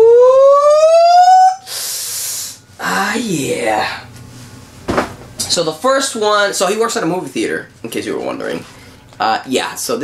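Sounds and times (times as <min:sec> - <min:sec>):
man's rising falsetto ooh: 0:00.0 - 0:01.7.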